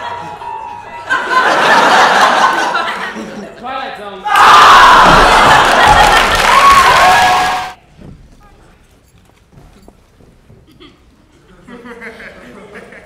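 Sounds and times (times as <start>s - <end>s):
crowd cheering and yelling: 0.0s - 2.8s, 4.2s - 7.8s.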